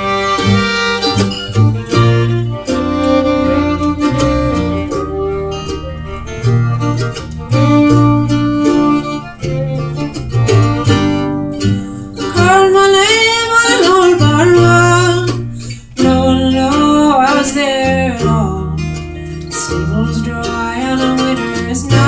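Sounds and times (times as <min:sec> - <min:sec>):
acoustic guitar chords: 0:00.0 - 0:22.0
mandolin chords: 0:00.0 - 0:22.0
upright bass line: 0:00.0 - 0:22.0
wavering lead melody: 0:00.0 - 0:22.0.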